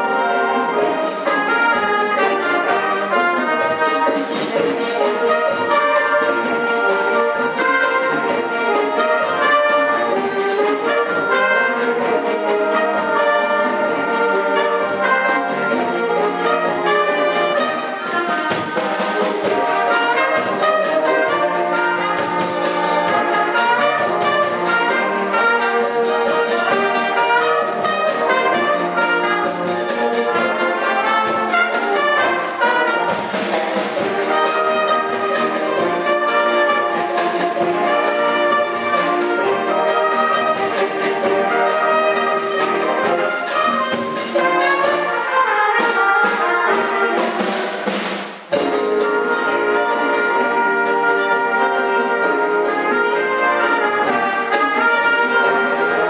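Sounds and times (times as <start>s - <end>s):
percussion beat: 0.0s - 56.0s
wind band playing a cha-cha: 0.0s - 56.0s.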